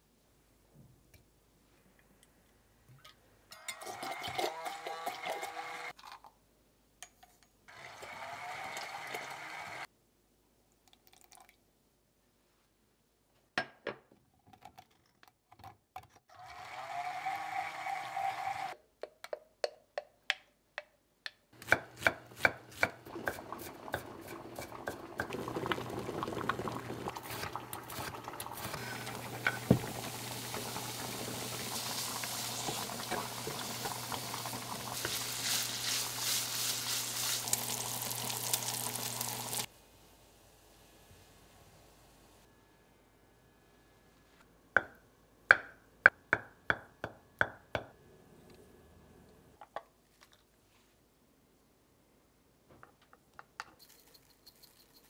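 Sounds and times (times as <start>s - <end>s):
stick blender motor: 3.8s - 5.9s, 7.7s - 9.9s, 16.3s - 18.8s
bacon sizzling in skillet: 22.3s - 39.7s.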